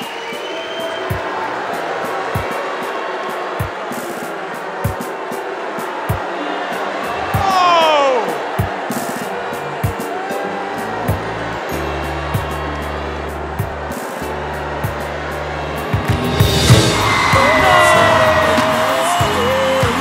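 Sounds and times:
audience cheering and whooping: 0.0s - 20.0s
pop backing music: 0.0s - 20.0s.

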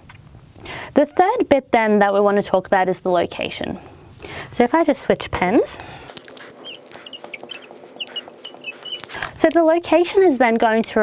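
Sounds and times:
marker squeaking on glass: 6.2s - 9.2s.

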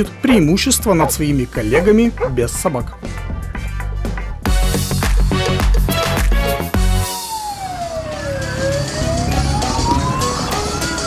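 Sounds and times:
fire engine siren wailing: 7.0s - 11.0s.

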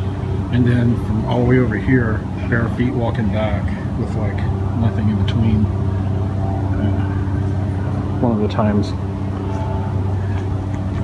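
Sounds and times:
low mechanical hum: 0.0s - 11.0s.

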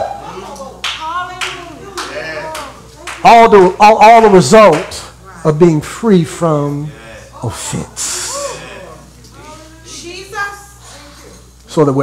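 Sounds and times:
scattered hand claps: 0.5s - 3.3s, 4.6s - 5.0s
faint voices responding: 6.7s - 11.6s.

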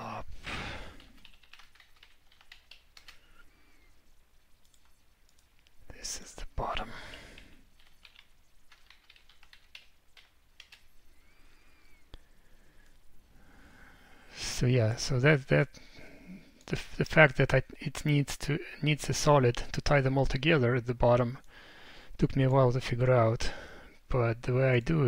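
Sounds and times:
computer keyboard typing: 0.9s - 3.4s, 4.6s - 5.5s, 7.1s - 10.9s.

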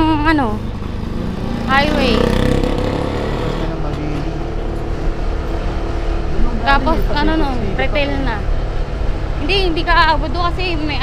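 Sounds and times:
motorcycle engine running: 0.0s - 11.0s
wind and road noise: 0.0s - 11.0s.

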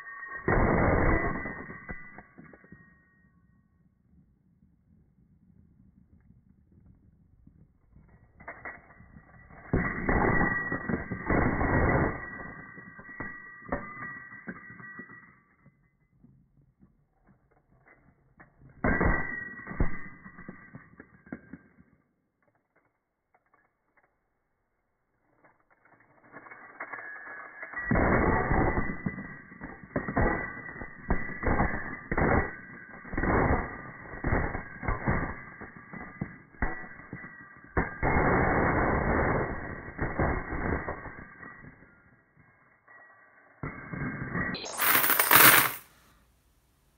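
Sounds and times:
coins clattering onto pile: 26.3s - 41.7s, 42.9s - 46.2s.

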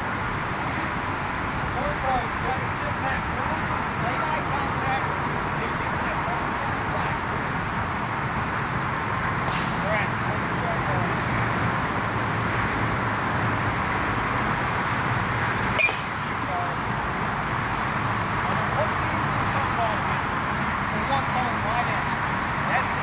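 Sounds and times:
outdoor background noise: 0.0s - 23.0s.

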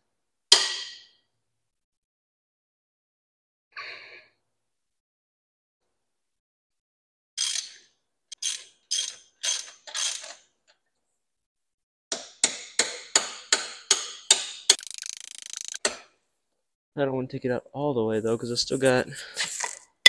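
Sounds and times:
socket ratchet clicking: 8.4s - 10.4s, 14.3s - 15.8s.

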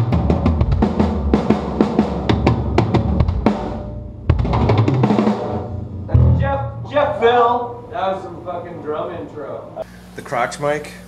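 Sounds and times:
rock drum kit playing: 0.0s - 8.0s.

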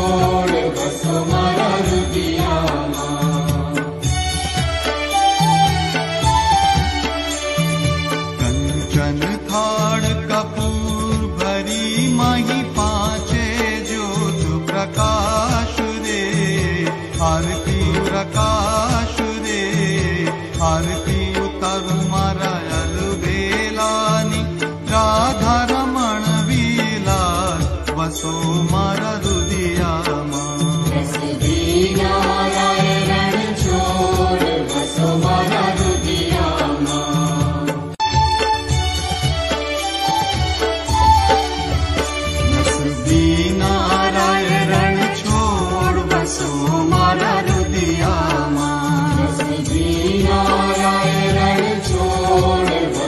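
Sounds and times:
person singing a devotional hymn: 0.0s - 3.8s, 8.4s - 37.9s, 42.5s - 53.0s
instrumental accompaniment: 0.0s - 53.0s
pulsing drum beat: 0.0s - 53.0s.

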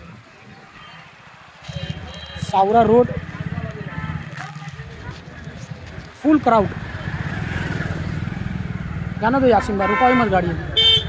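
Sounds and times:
busy street noise: 0.0s - 11.0s
motorcycle engine puttering: 1.6s - 9.5s.

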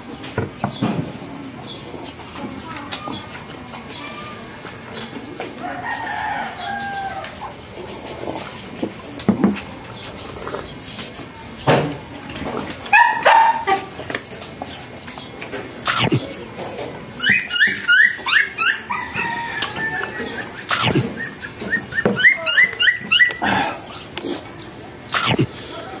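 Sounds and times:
dog yapping: 12.9s - 13.9s, 17.2s - 23.7s.

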